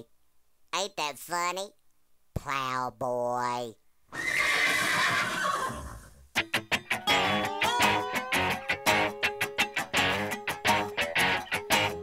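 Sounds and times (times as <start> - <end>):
horse whinnying: 4.1 - 6.2
plucked string music: 6.4 - 12.0.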